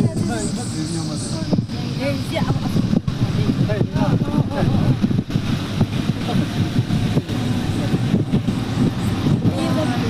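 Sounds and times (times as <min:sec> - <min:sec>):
dense outdoor noise: 0:00.0 - 0:10.0
indistinct voices talking: 0:00.0 - 0:10.0.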